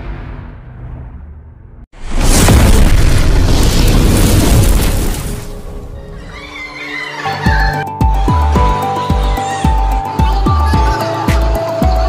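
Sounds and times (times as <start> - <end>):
loud boom with rushing noise: 0.0 - 5.8
electronic music with thumping beat: 7.6 - 12.0.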